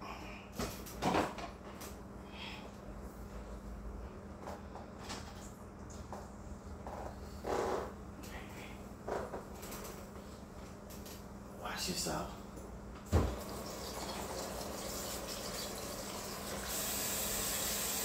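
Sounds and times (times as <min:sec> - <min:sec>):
steady low hum: 0:00.0 - 0:13.5.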